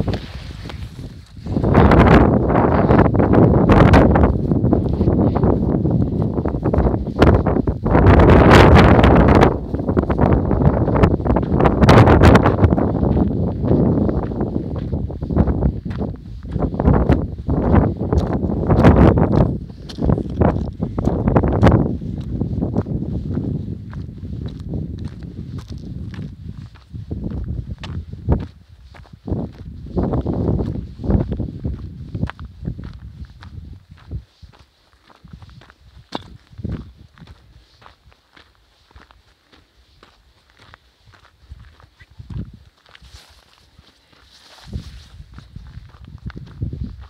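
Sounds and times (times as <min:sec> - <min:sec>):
footsteps walking: 0:00.0 - 0:47.0
wind buffeting microphone: 0:00.0 - 0:47.0.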